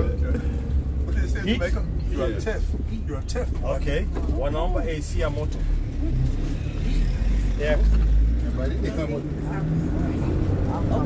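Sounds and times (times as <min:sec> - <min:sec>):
engine and road rumble: 0:00.0 - 0:11.0.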